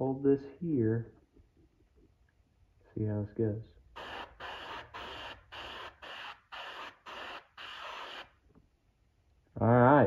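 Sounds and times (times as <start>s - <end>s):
airbrush spraying hiss: 4.0s - 8.4s.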